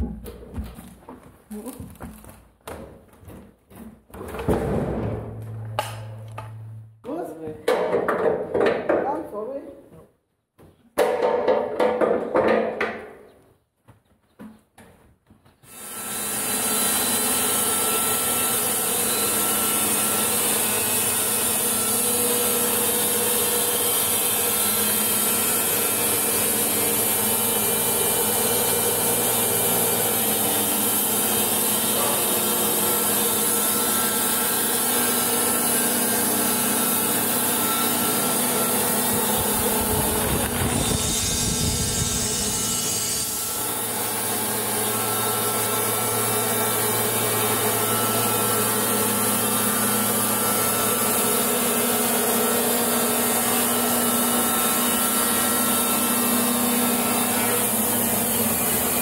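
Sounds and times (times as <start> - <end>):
band sawmill cutting log: 15.7 - 59.0.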